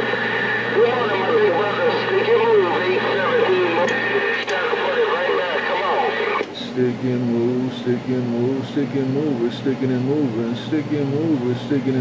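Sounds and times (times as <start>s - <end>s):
steady radio hum: 0.0s - 12.0s
speech over cb radio: 0.7s - 12.0s.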